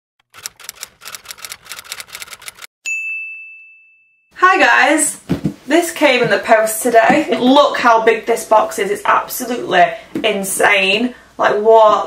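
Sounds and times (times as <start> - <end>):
typewriter key strikes: 0.2 - 2.7.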